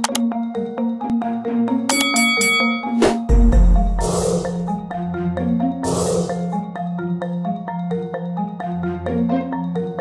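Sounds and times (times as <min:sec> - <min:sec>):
repeating mallet-like music: 0:00.3 - 0:10.0
bright ringing ding: 0:01.9 - 0:03.0.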